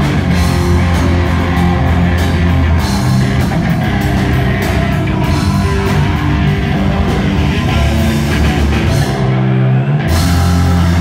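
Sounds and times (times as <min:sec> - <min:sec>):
drums: 0:00.0 - 0:11.0
heavy rock band playing: 0:00.0 - 0:11.0.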